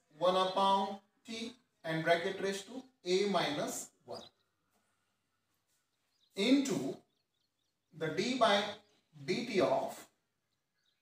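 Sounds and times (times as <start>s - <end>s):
small bird chirp: 2.4s - 9.2s, 10.4s - 11.0s.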